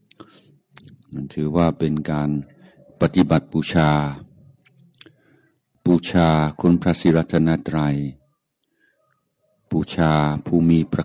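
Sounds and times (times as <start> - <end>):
man speaking into microphone: 0.8 - 4.4, 5.8 - 8.3, 9.7 - 11.0.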